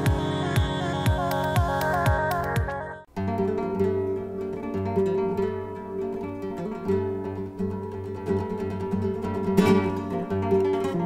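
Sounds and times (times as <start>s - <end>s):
acoustic guitar music: 0.0s - 11.0s.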